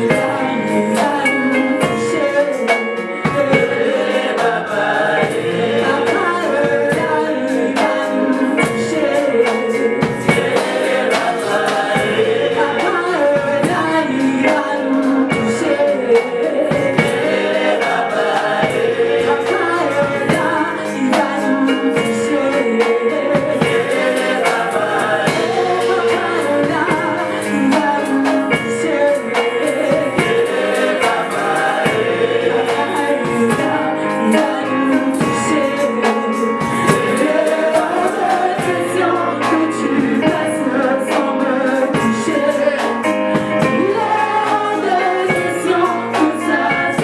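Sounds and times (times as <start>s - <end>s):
backing singers: 0.0s - 47.0s
keyboard accompaniment with beat: 0.0s - 47.0s
woman leading gospel singing: 0.0s - 47.0s.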